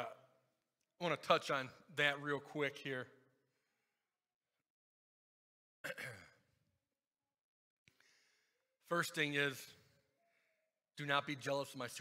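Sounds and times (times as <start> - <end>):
soft breath in: 7.9 - 8.6.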